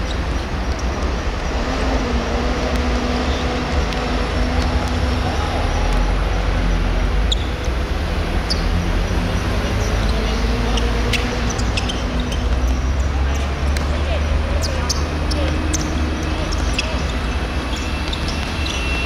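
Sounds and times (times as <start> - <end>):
road traffic rumble: 0.0 - 19.0.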